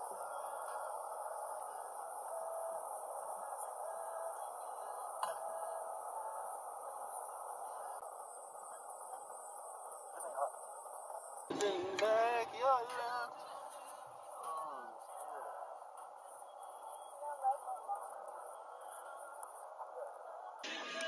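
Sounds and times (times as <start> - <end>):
muffled hiss: 0.0 - 21.0.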